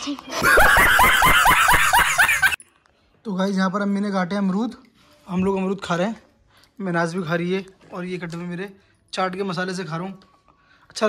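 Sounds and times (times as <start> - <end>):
man laughing loudly: 0.4 - 2.6.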